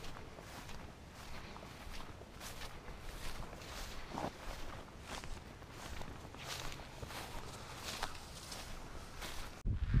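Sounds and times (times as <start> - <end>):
footsteps in dry grass: 0.0 - 10.0.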